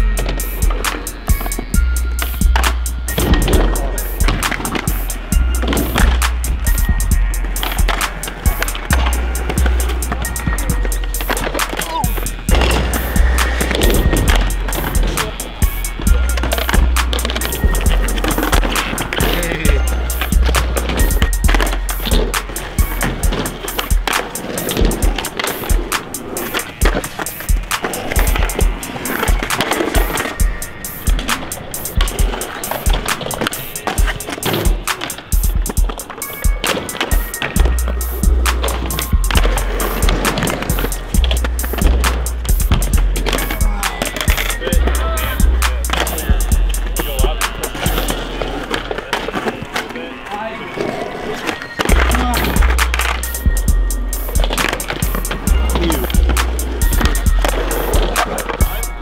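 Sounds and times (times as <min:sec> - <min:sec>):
beat with deep bass: 0:00.0 - 0:25.9, 0:31.9 - 0:33.0, 0:37.4 - 0:48.4, 0:51.9 - 0:59.0
skateboard wheels rolling on concrete: 0:00.0 - 0:59.0
skateboards popping and clattering: 0:00.0 - 0:59.0.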